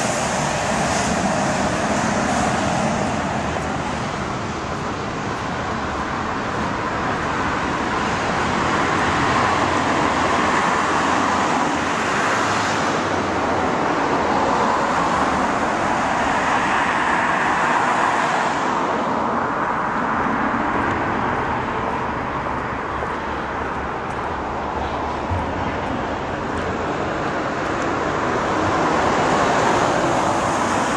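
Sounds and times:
cars passing on street: 0.0s - 30.9s.

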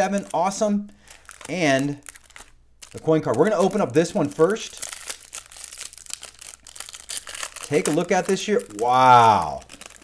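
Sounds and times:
plastic wrapper tearing and crinkling: 0.0s - 10.0s.

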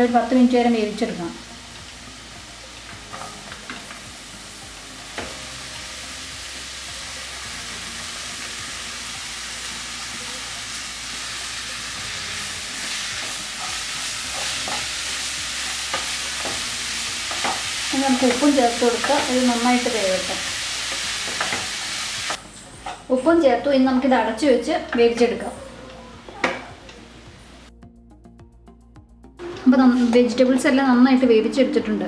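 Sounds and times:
vegetables sizzling in a frying pan: 0.0s - 23.0s.

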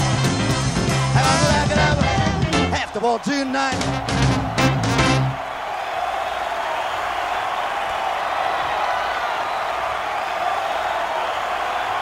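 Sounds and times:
crowd applauding: 1.7s - 12.0s.

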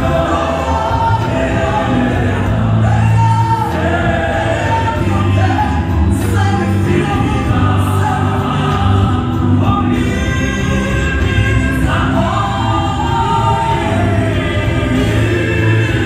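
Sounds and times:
choir singing gospel: 0.0s - 16.0s
low musical backing: 0.0s - 16.0s.

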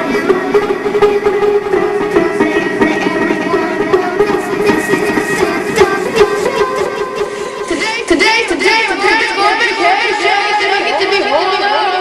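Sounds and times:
high-pitched voices chattering: 2.1s - 12.0s.

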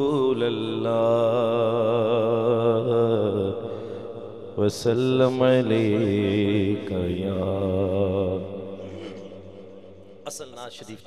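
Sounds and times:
man singing into microphone: 0.0s - 3.6s, 4.6s - 9.2s.

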